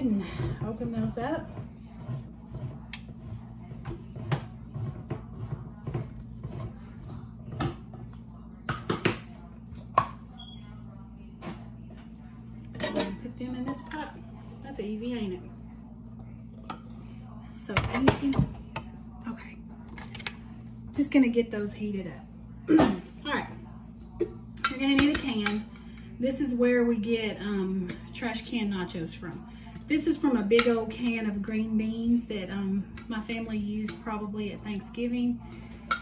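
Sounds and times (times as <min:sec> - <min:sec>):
low steady hum: 0:00.0 - 0:36.0
kitchen handling clatter: 0:12.7 - 0:14.1.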